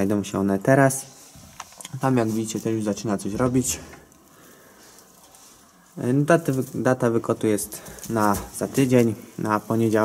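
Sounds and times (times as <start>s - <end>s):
rustling of straw bedding: 0.0s - 10.0s.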